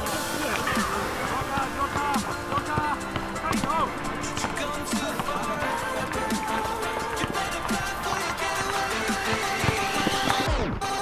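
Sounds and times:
music with sung vocals: 0.0 - 11.0.

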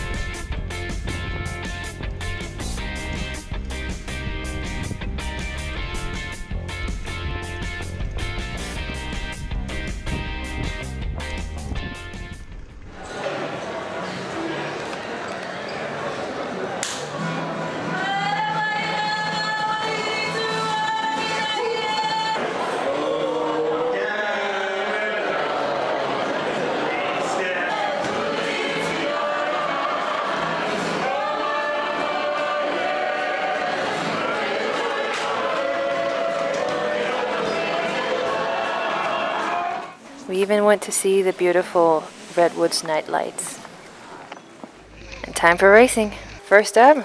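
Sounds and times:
group singing in harmony: 17.7 - 40.0.

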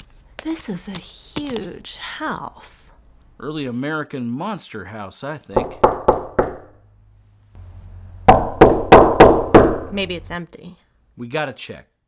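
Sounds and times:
heavy knocks: 5.6 - 6.8, 8.3 - 9.9
low steady hum: 5.6 - 10.4.

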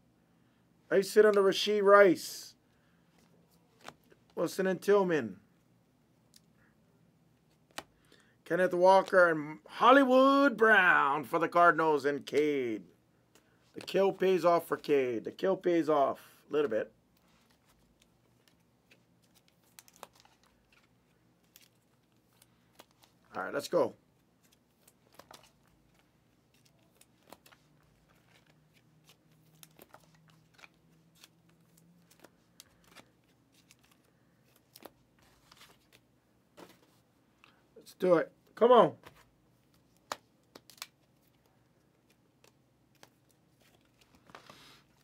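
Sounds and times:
trading cards crinkling and clicking: 3.1 - 4.4, 7.4 - 8.2, 17.1 - 37.6, 39.0 - 45.0
cards clicking and sliding: 24.4 - 36.0.

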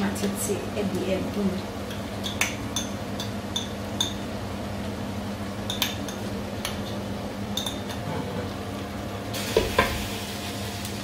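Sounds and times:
onions sizzling in a pot: 0.0 - 11.0.

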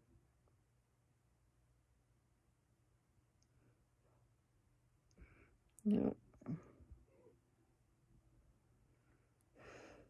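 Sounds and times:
woman speaking: 5.8 - 6.6.

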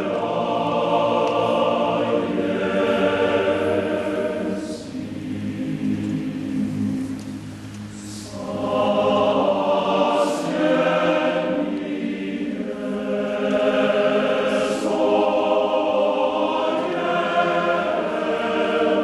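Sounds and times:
men's choir singing: 0.0 - 7.2, 8.0 - 19.0.

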